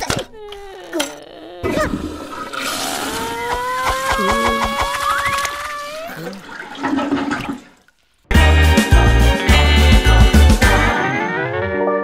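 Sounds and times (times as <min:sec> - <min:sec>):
toilet flushing: 0:01.8 - 0:03.5, 0:04.1 - 0:07.9.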